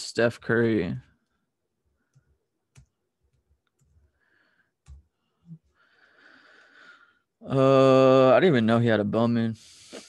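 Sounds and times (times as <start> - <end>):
computer keyboard keystrokes: 2.1 - 4.1, 4.8 - 5.1.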